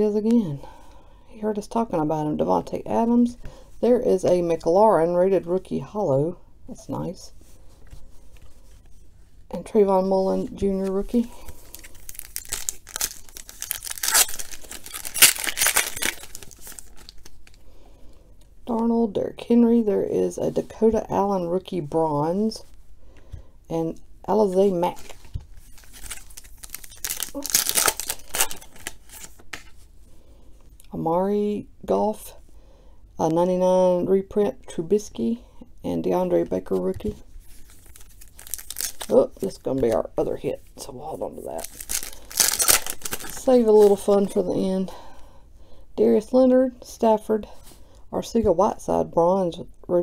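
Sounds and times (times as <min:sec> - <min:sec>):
foil card pack tearing and crinkling: 0:11.4 - 0:17.6, 0:24.9 - 0:29.7, 0:37.5 - 0:39.2, 0:41.6 - 0:44.0.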